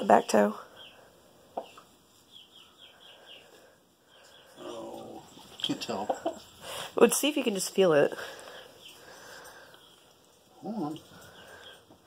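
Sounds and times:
chicks peeping: 0:00.8 - 0:06.8.

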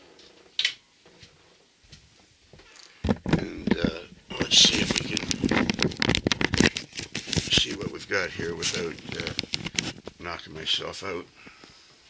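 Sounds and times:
rustling and crackling clicks: 0:02.6 - 0:10.7.

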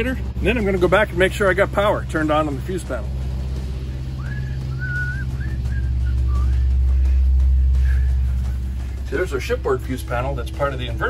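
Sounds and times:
generator humming: 0:00.0 - 0:11.0.

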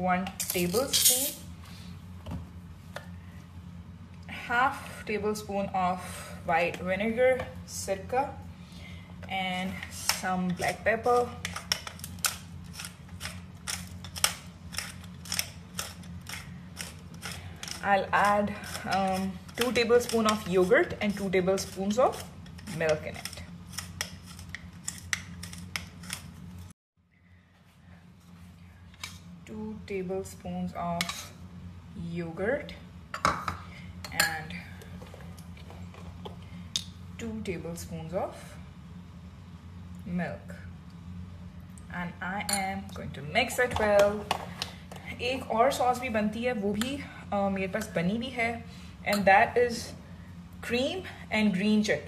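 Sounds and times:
pepper mill grinding: 0:00.4 - 0:01.4, 0:10.1 - 0:26.4.

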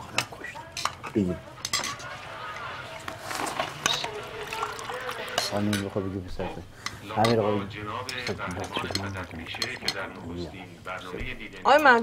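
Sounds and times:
spoons clinking on plates: 0:00.1 - 0:10.7.

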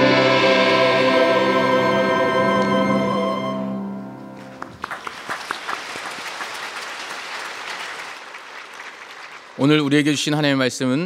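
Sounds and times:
choir and orchestra chord: 0:00.0 - 0:04.4
congregation applauding: 0:04.4 - 0:10.4.

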